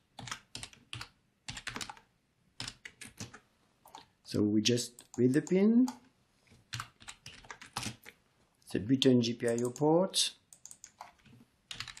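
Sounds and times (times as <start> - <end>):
computer keyboard typing: 0.2 - 4.1, 5.0 - 6.0, 6.6 - 8.2, 9.4 - 9.9, 10.5 - 12.0.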